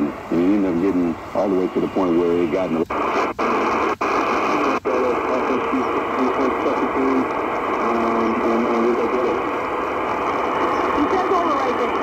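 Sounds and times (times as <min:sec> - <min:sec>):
radio hiss and static: 0:00.0 - 0:12.0
voice on radio speaker: 0:00.0 - 0:12.0.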